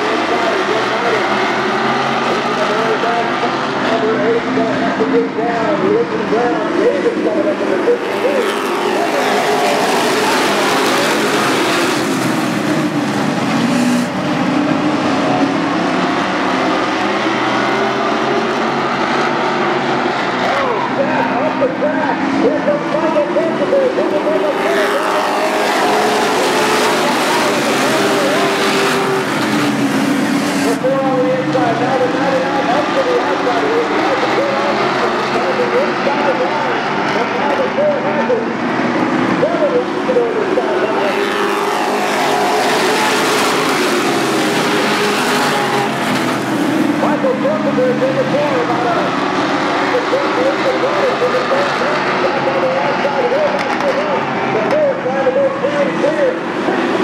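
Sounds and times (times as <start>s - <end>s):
race truck engines passing: 0.0s - 57.0s.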